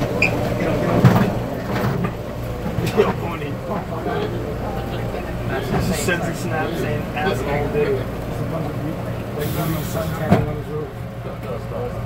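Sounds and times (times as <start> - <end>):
passengers' voices: 0.0 - 12.0
train car low hum: 0.0 - 12.0.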